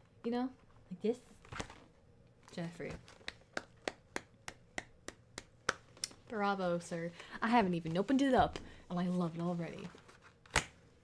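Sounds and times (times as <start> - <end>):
person clapping slowly: 3.3 - 5.9.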